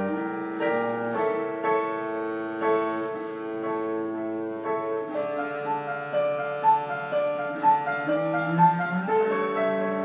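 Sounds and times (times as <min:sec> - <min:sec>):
low cello line: 0:00.0 - 0:10.0
piano notes: 0:00.0 - 0:10.0.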